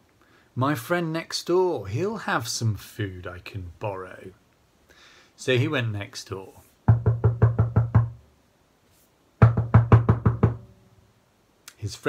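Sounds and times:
rapid knocking on wooden door: 6.9s - 8.2s, 9.4s - 10.7s.

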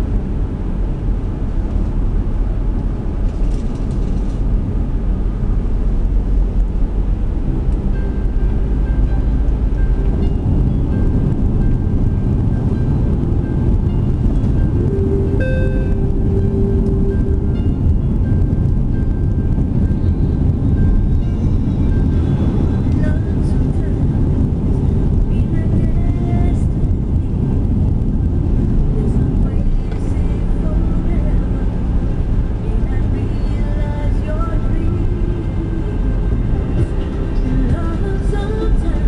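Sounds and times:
car engine and tyre rumble: 0.0s - 39.0s
faint music: 1.9s - 39.0s.

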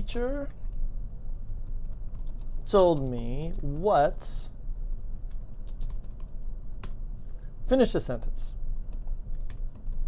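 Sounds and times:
computer keyboard typing: 0.0s - 7.0s, 8.7s - 10.0s
low steady hum: 0.0s - 10.0s.

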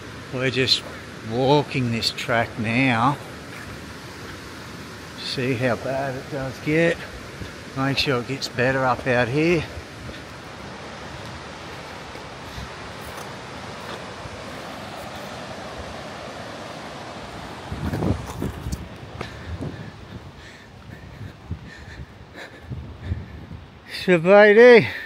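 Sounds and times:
river running over rapids: 0.0s - 25.0s
wind buffeting microphone: 3.5s - 23.9s.

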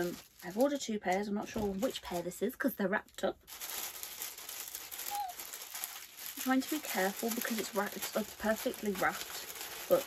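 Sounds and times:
wrapping paper crinkling: 0.0s - 10.0s.

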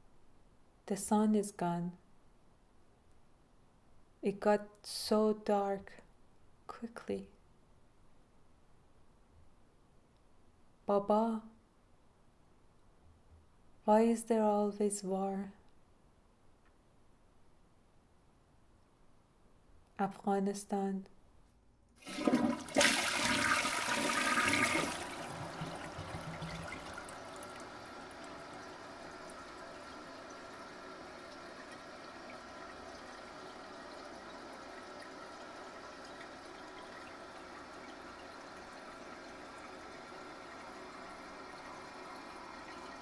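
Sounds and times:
toilet flushing: 22.0s - 43.0s.

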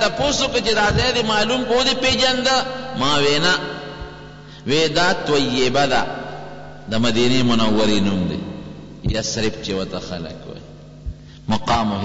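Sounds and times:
man chanting: 0.0s - 4.1s, 4.7s - 10.6s.

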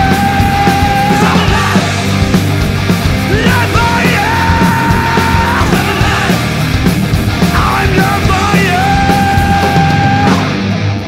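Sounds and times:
hard rock band playing: 0.0s - 11.0s.

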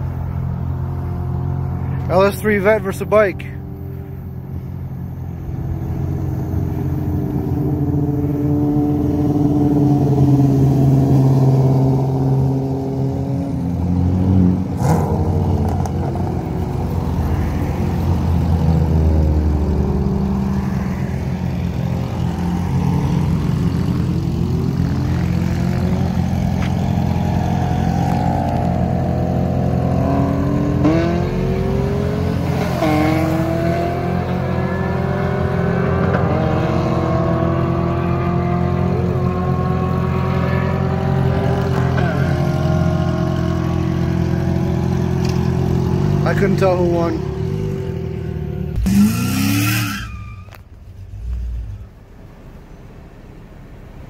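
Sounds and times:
car engine accelerating hard: 5.6s - 52.2s.

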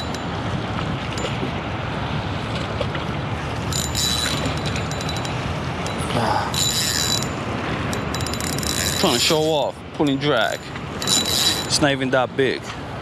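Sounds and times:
fishing reel buzzing: 3.7s - 6.0s, 6.6s - 9.3s, 11.0s - 11.8s.

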